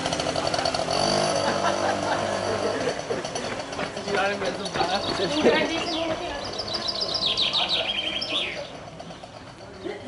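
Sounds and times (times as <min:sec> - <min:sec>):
songbird chirping and trilling: 0:04.9 - 0:08.8.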